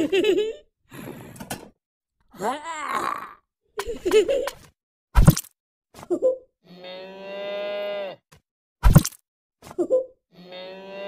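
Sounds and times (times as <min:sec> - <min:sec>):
cow mooing: 0:06.7 - 0:08.2, 0:10.4 - 0:11.0.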